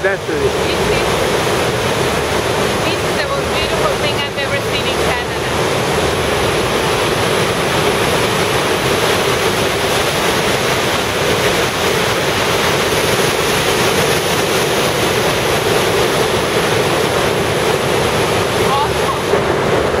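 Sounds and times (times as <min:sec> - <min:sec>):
river rushing through gorge: 0:00.0 - 0:20.0.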